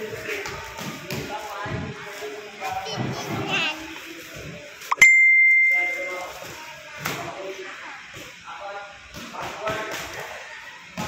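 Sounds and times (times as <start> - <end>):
bell strike: 4.9 - 6.2.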